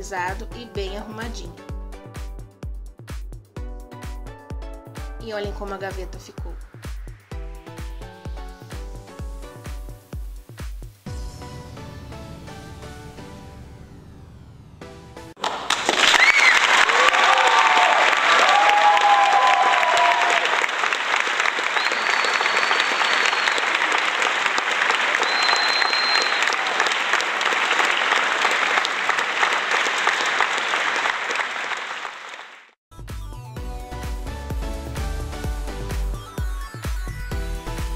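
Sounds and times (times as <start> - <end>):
applause with cheering: 15.4 - 32.8
whoops: 16.0 - 20.7, 21.7 - 24.1, 25.1 - 28.2
short high whistles: 21.7 - 23.9, 25.1 - 26.7.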